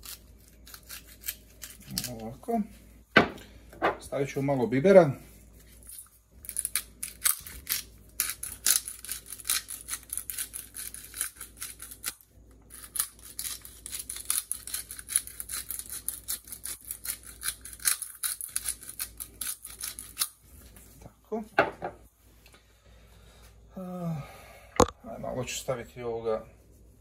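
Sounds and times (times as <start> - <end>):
pepper mill grinding: 0.0 - 2.4, 5.8 - 20.4.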